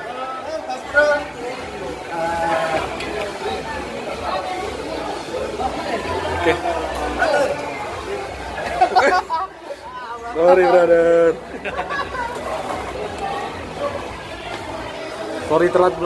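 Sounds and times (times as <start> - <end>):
group of people chattering: 0.0 - 16.0.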